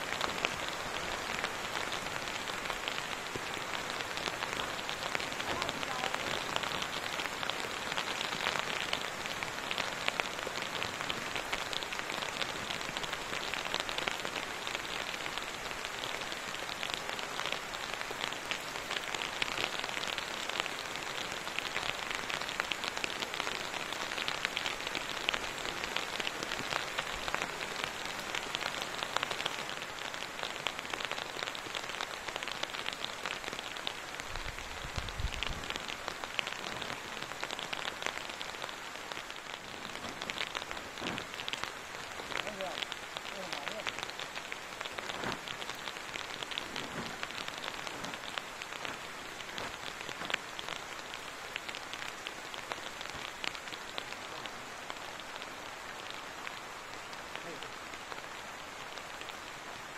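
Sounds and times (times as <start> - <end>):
steady rain falling: 0.0 - 59.9.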